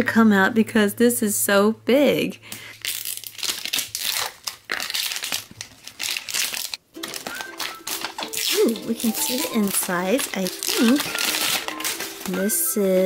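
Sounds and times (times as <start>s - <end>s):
plastic wrapper crinkling and tearing: 2.7s - 13.0s.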